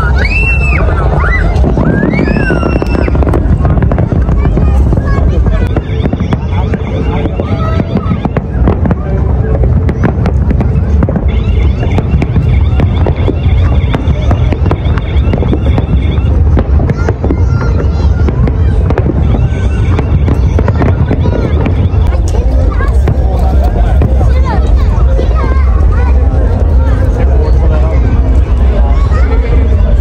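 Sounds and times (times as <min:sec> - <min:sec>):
continuous low rumble: 0:00.0 - 0:30.0
fireworks bangs: 0:00.0 - 0:30.0.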